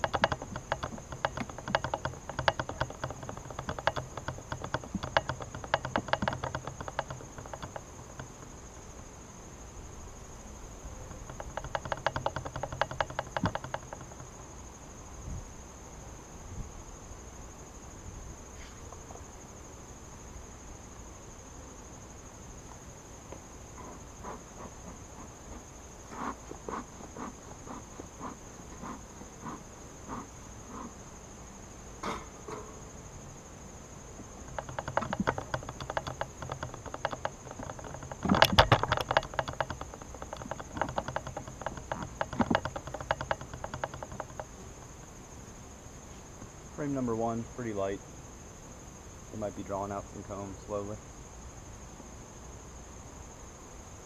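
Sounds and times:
smoker puffs and clicks: 0:00.0 - 0:08.6, 0:11.1 - 0:14.4, 0:34.2 - 0:45.2
wooden hive boxes clattering: 0:00.0 - 0:08.8, 0:11.1 - 0:14.7, 0:34.2 - 0:45.3
insects chirring: 0:00.0 - 0:54.0.

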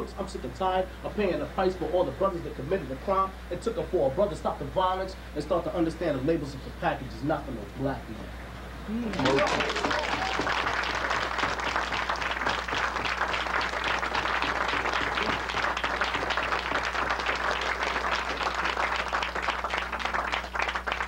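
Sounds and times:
audience applauding: 0:09.1 - 0:21.0.

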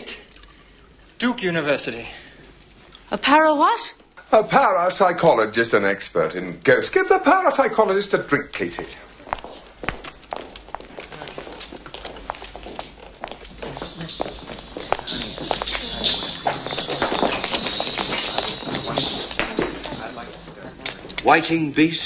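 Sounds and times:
murmured conversation: 0:01.3 - 0:22.0
footsteps on hard floor: 0:08.7 - 0:21.2.

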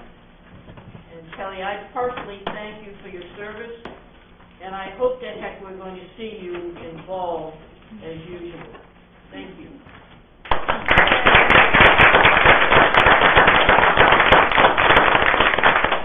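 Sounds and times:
roomful of people applauding: 0:10.5 - 0:16.0.

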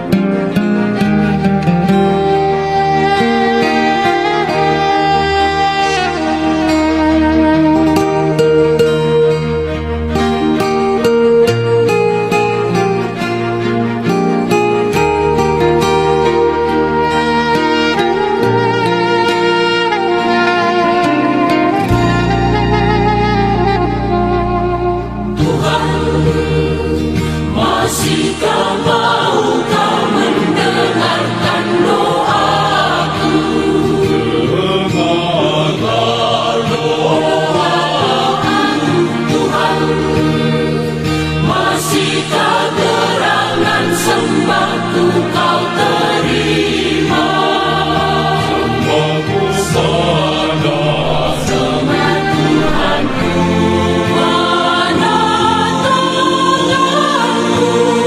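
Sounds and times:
instrumental accompaniment with bass: 0:00.0 - 0:57.9
choir singing worship song: 0:25.3 - 0:58.0.

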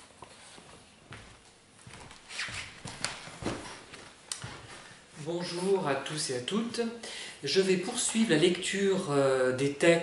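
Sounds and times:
footsteps: 0:00.0 - 0:05.8
clothing and paper rustling: 0:00.0 - 0:05.9.

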